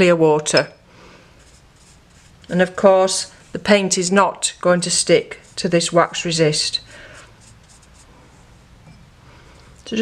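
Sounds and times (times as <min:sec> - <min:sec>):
brush stroking on paper: 0:01.3 - 0:08.6.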